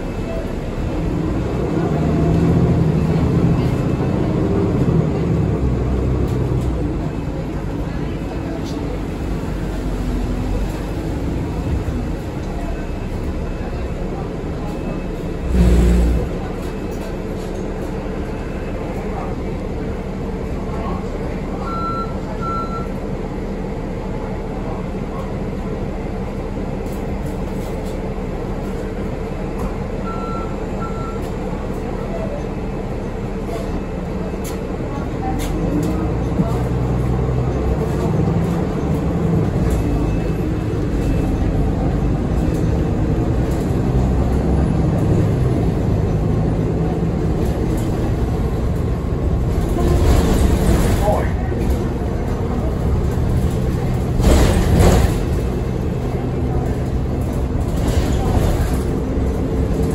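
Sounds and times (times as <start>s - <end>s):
bus engine and road hum: 0.0s - 59.9s
short double beep: 21.6s - 23.0s.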